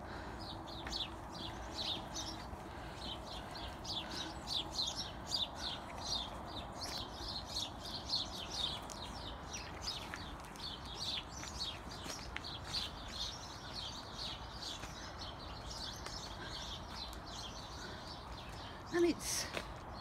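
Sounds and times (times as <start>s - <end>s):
faint steady background noise: 0.0s - 20.0s
songbirds chirping: 0.0s - 20.0s.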